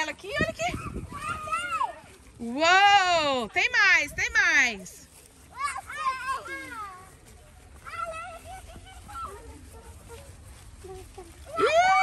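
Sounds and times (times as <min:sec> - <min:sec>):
children calling out: 0:00.6 - 0:02.2, 0:07.8 - 0:12.0.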